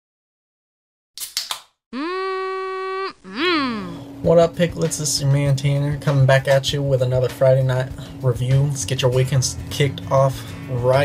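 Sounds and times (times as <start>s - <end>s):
held voice-like tone: 2.0s - 4.0s
swooping tone: 2.0s - 4.0s.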